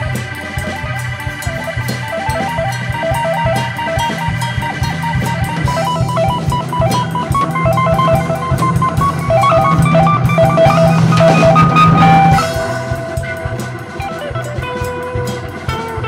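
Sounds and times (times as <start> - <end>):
bass guitar: 0.0 - 16.0
drum kit: 0.0 - 16.0
picked guitar melody: 0.0 - 16.0.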